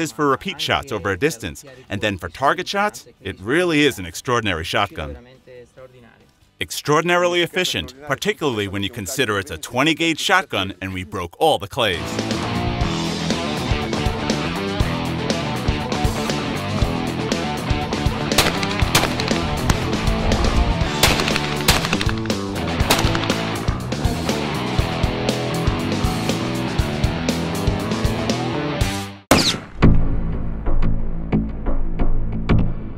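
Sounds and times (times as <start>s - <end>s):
background music with steady beat: 12.0s - 29.2s
sharp shotgun shots: 18.3s - 20.1s, 21.0s - 23.8s, 29.3s - 30.0s.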